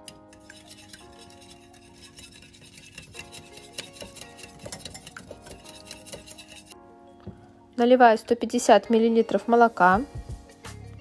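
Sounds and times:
whisk beating eggs in glass bowl: 0.0 - 6.8.

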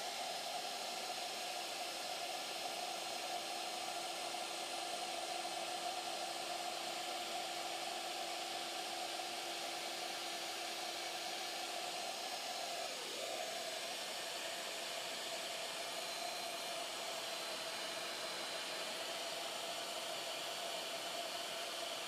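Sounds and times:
router spindle whining: 0.1 - 22.0.

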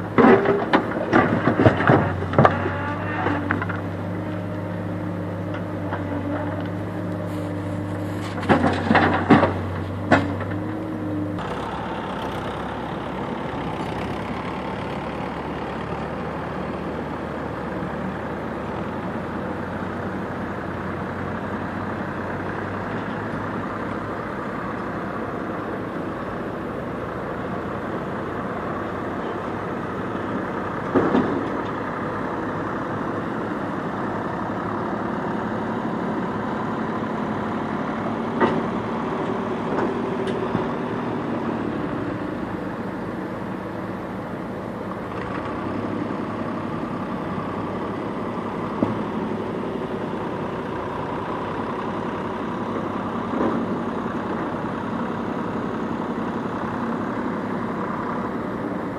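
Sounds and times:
diesel engines running: 0.0 - 58.9.

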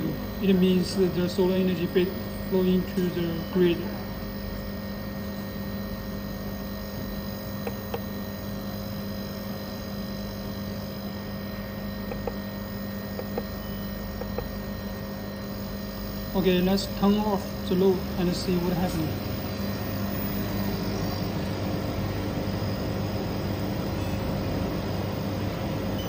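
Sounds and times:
electrical equipment hum: 0.0 - 26.0
soft whirring noise: 0.0 - 26.0.

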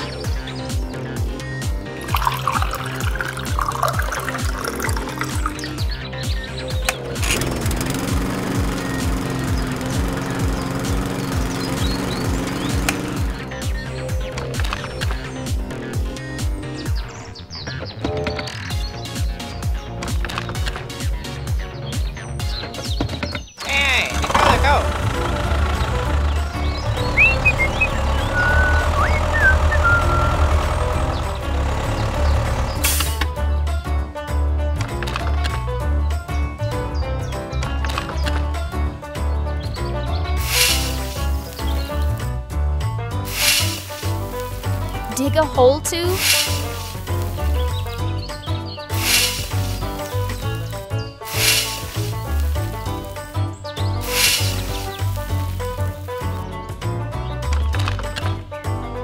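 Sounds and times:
background music with steady beat: 0.0 - 18.1, 24.7 - 59.0
tractor engine running: 0.0 - 23.0, 23.6 - 59.0
water trickling into metal can: 2.0 - 5.7
short squeaky chirps: 27.0 - 30.4.

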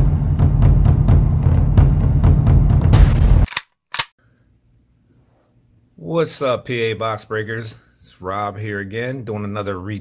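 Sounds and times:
drum-heavy intro music: 0.0 - 3.5.

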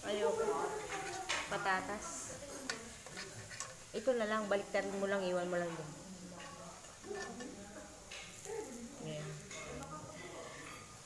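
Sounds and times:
metal tongs clicking on grill: 0.8 - 2.0, 2.6 - 9.9.

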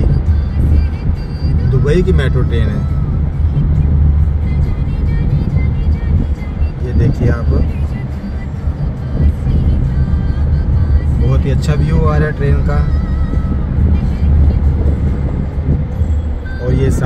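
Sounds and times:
car driving at highway speed: 0.0 - 17.0
music playing: 0.0 - 17.0.

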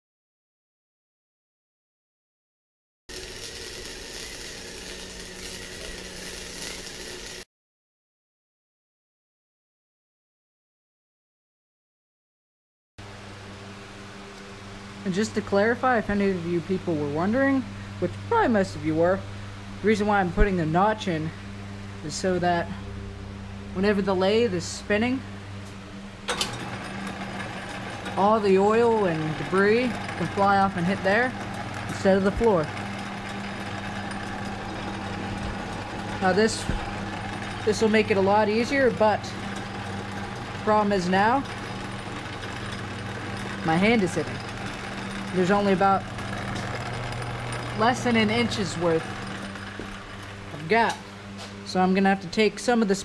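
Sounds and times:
metal lathe running: 3.1 - 7.4, 26.2 - 51.9
machine whirring: 3.1 - 7.5, 23.3 - 51.7.

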